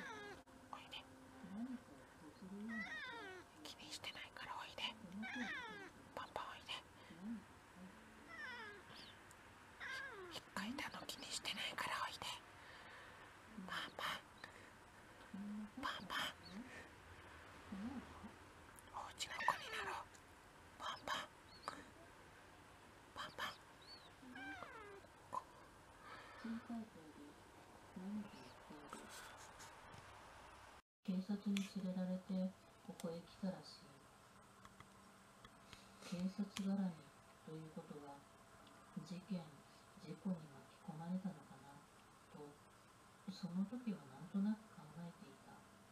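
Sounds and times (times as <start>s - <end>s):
cat meowing: 0.0s - 0.4s, 2.7s - 3.5s, 5.1s - 6.0s, 8.2s - 8.9s, 9.8s - 10.4s, 19.2s - 20.0s, 24.2s - 25.1s.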